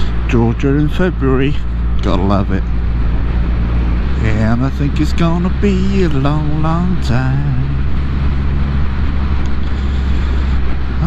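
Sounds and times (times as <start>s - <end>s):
motorcycle engine cruising: 0.0s - 11.0s
wind rushing over microphone: 1.6s - 11.0s.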